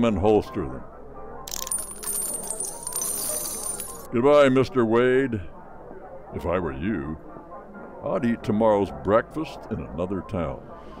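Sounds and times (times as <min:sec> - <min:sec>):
revolver cartridges clinking: 0:01.5 - 0:04.1.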